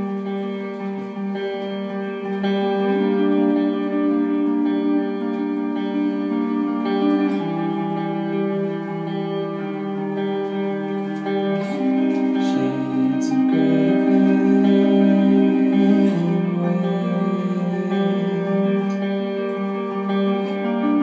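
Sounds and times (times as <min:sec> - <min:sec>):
electric guitar ringing chords: 0:00.0 - 0:21.0.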